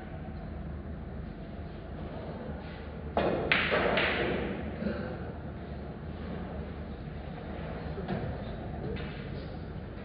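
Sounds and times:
cue tip striking ball: 0:03.2 - 0:04.6.

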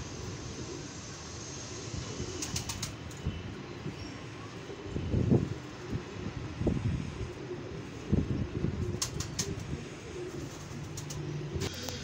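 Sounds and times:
pigeons cooing: 0:04.6 - 0:12.0.

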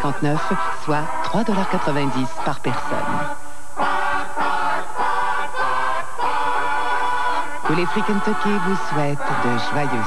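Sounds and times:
choir singing jingle: 0:00.0 - 0:10.0.

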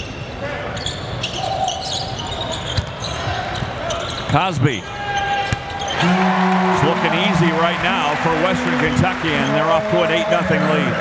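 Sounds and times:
sneaker squeaks: 0:00.0 - 0:04.4
murmur of crowd voices: 0:00.3 - 0:11.0.

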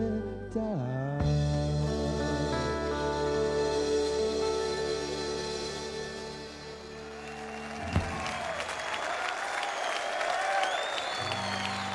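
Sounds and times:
audience applauding: 0:06.6 - 0:11.9
thump: 0:07.9 - 0:08.2.

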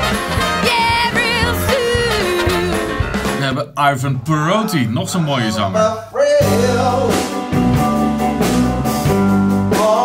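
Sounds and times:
live band with electric guitar: 0:00.0 - 0:03.6, 0:06.4 - 0:10.0
man singing into microphone: 0:05.3 - 0:07.4, 0:09.6 - 0:10.0.

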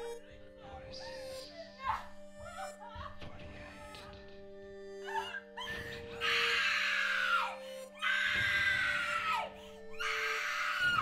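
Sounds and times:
woman screaming: 0:05.0 - 0:11.0.

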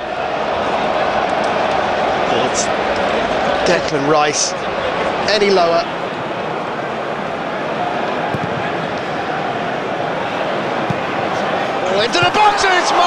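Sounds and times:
stadium crowd din: 0:00.0 - 0:13.0.

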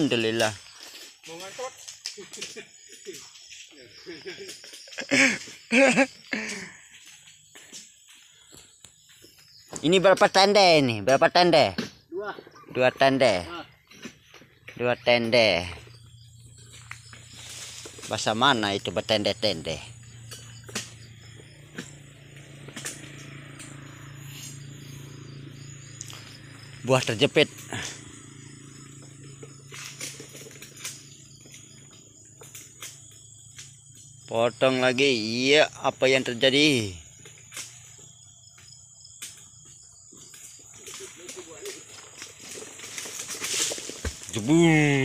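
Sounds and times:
insects chirring: 0:00.0 - 0:45.0
chisel chopping palm fruit: 0:20.2 - 0:21.1, 0:21.7 - 0:23.8.

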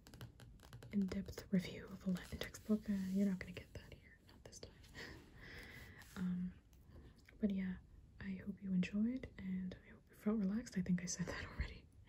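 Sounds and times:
person speaking softly: 0:00.9 - 0:05.1
person whispering: 0:01.0 - 0:05.0.

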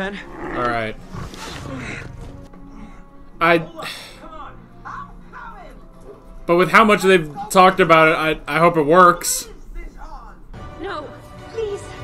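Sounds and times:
low rough animal grunt: 0:00.0 - 0:02.3
orchestral film score music: 0:00.1 - 0:08.9, 0:10.4 - 0:12.0.

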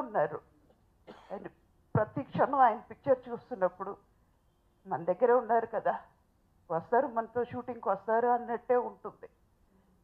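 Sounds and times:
woman speaking into microphone: 0:00.0 - 0:00.4, 0:02.0 - 0:04.0, 0:04.9 - 0:06.1, 0:06.7 - 0:09.3
woman coughing: 0:00.7 - 0:01.6.

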